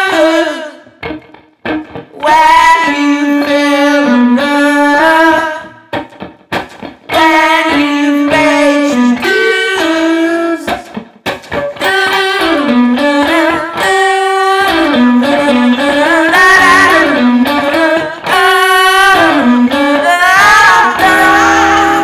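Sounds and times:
bluesy electric guitar lead: 0.0 - 22.0.

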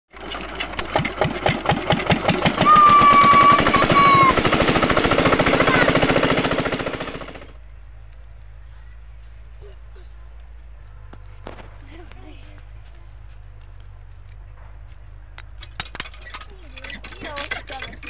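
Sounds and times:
diesel engine starting and running: 0.1 - 7.6.

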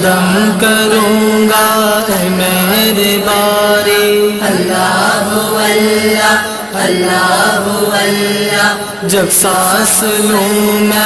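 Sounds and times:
man singing devotional song: 0.0 - 11.0.

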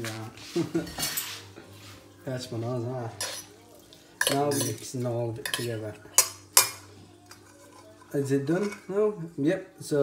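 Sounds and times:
metal utensils clinking on pot: 0.8 - 1.4, 3.1 - 3.6, 4.2 - 9.4.

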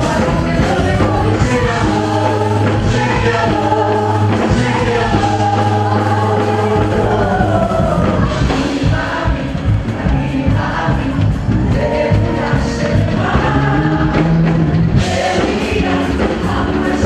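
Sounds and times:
choir singing over a band: 0.0 - 17.0.

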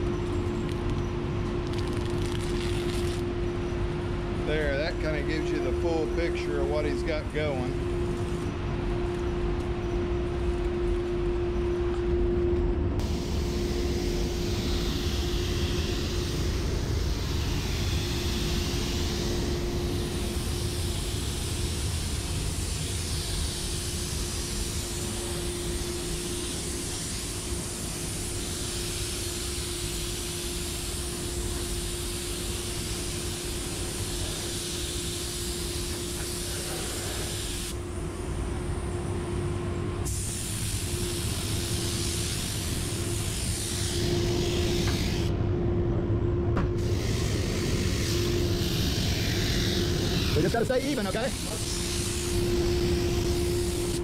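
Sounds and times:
low hum and rumble: 0.0 - 54.0
paint spray gun hissing: 13.0 - 37.8, 40.0 - 45.3, 46.8 - 54.0.

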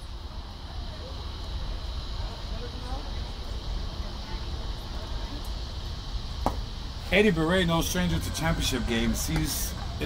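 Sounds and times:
ballpark rumble and hiss: 0.0 - 10.0
faint high steady tone: 0.0 - 10.0.

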